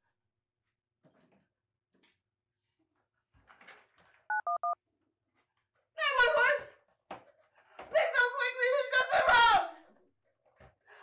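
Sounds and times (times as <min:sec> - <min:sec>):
touch-tone keypad beeps: 0:04.3 - 0:04.8.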